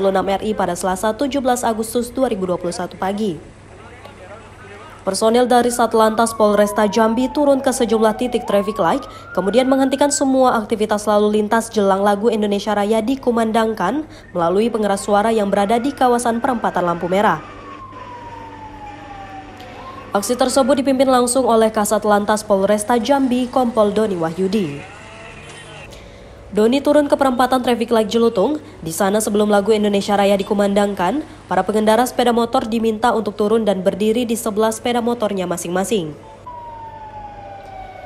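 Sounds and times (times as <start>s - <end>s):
low street noise: 0.0s - 38.0s
wailing siren: 5.2s - 11.3s, 12.8s - 25.4s, 36.0s - 38.0s.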